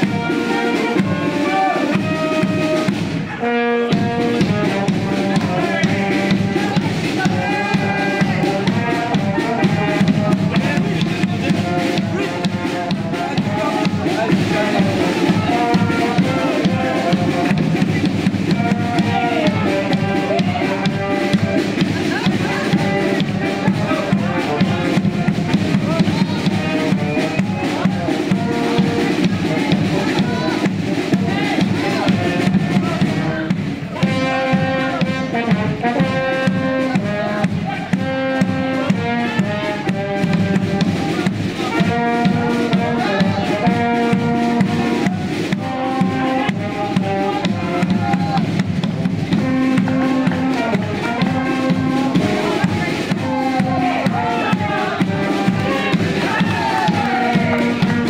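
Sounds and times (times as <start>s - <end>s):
brass band with drums: 0.0s - 58.0s.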